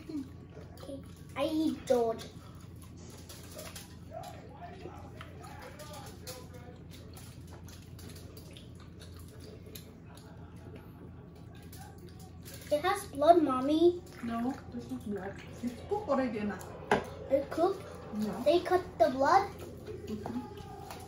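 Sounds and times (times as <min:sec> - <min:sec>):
faint low voices murmuring: 0:02.4 - 0:12.8.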